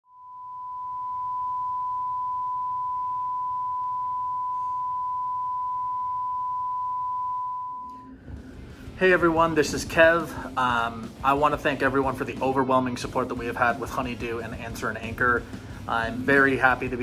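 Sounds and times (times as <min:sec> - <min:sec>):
broadcast test tone: 0:00.1 - 0:08.1.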